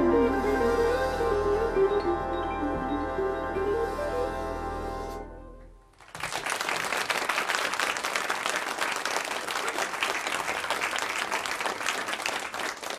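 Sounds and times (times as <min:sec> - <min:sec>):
audience applauding: 0:05.9 - 0:12.9.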